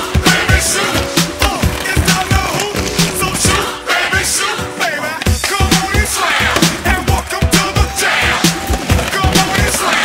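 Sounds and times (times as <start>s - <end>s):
pop music with singing: 0.0s - 10.0s
skateboard wheels on concrete: 0.1s - 10.0s.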